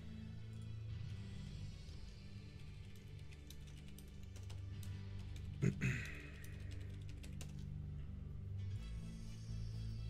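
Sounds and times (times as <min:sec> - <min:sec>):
quiet background music: 0:00.0 - 0:10.0
computer keyboard typing: 0:02.5 - 0:07.6.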